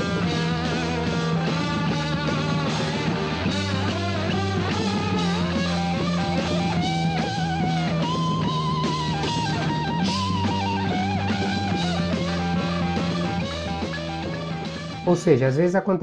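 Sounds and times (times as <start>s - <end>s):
electric guitar lead line: 0.0s - 15.5s
heavy rock music: 0.0s - 15.6s.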